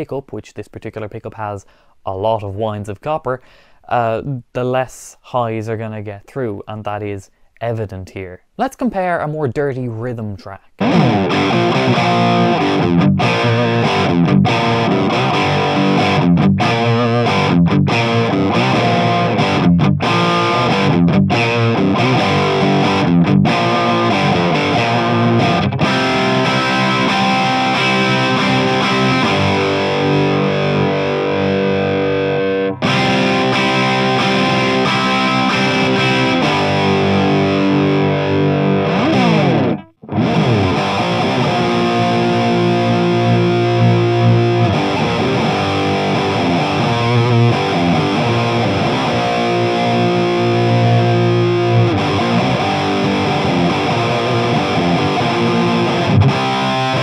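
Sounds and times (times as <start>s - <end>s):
overdriven electric guitar: 10.8s - 57.0s.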